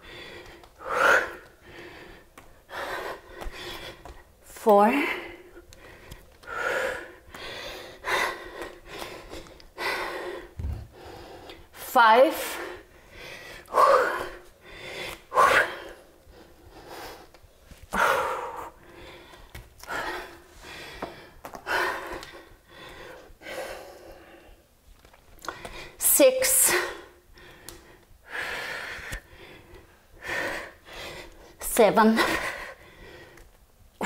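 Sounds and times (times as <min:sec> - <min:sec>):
woman breathing hard: 0:00.0 - 0:24.8, 0:25.4 - 0:34.0.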